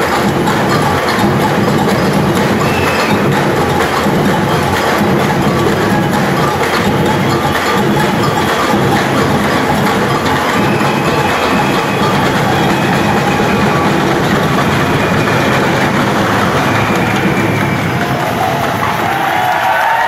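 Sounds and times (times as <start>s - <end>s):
crowd noise: 0.0s - 20.0s
drum group playing percussion: 0.0s - 20.0s.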